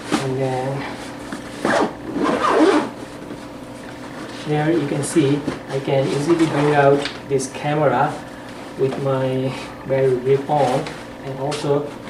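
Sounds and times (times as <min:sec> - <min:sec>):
backpack zipper pulled open: 0:01.7 - 0:02.9.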